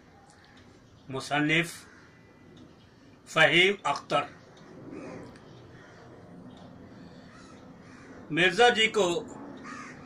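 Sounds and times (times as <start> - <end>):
faint bird calls: 0.0 - 3.2, 3.9 - 8.4, 9.5 - 10.0.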